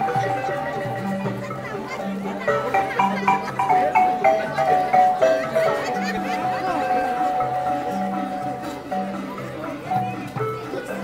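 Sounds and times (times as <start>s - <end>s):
crowd chatter: 0.0s - 11.0s
marimba dance music: 0.0s - 11.0s.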